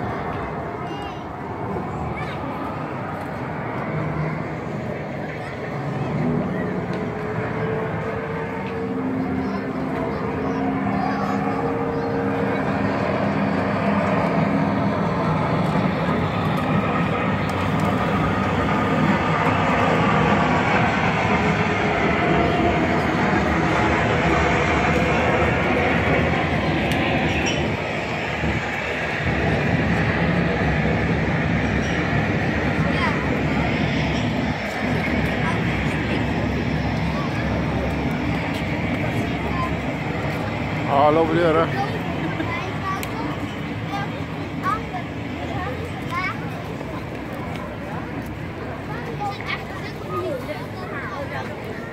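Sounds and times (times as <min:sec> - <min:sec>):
crowd chatter: 0:00.0 - 0:51.9.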